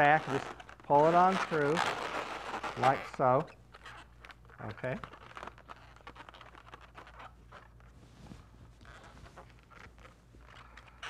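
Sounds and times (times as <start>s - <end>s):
balloon rubbing and squeaking: 0.0s - 11.0s.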